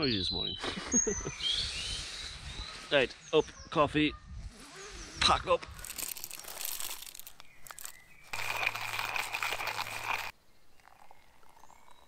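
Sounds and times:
hand coffee grinder crunching beans: 0:05.8 - 0:11.9.

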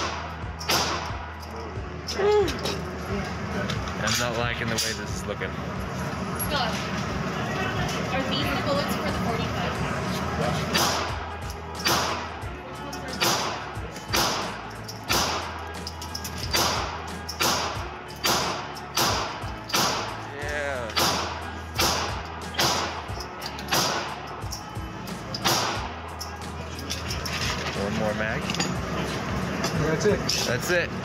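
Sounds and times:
pistol shots: 0:00.0 - 0:01.3, 0:10.7 - 0:11.2, 0:11.8 - 0:12.4, 0:13.2 - 0:15.6, 0:16.5 - 0:20.2, 0:20.9 - 0:23.1, 0:23.7 - 0:24.2, 0:25.4 - 0:25.9.

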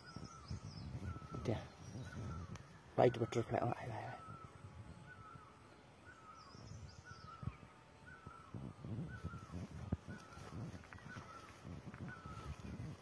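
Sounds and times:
bird calling: 0:00.0 - 0:13.0.

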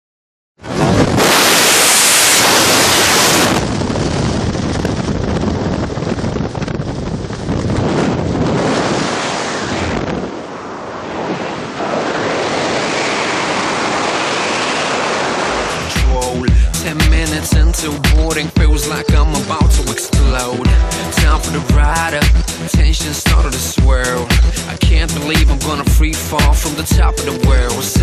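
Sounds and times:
heavy wind on microphone: 0:00.6 - 0:26.2.

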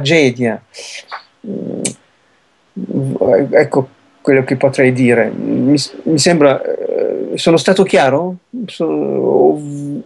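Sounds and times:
low rough vocal sound: 0:00.8 - 0:02.0, 0:02.8 - 0:03.8, 0:05.0 - 0:07.5, 0:08.4 - 0:10.0.

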